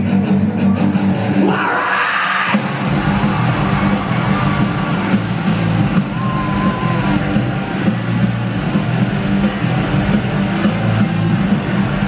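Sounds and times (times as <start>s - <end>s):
rock band playing live: 0.0s - 12.0s
audience yelling: 0.7s - 8.2s.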